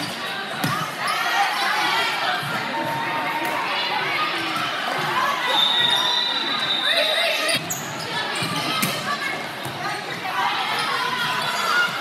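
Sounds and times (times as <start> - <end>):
spectators talking: 0.0 - 12.0
shoe squeak on court: 5.5 - 9.0.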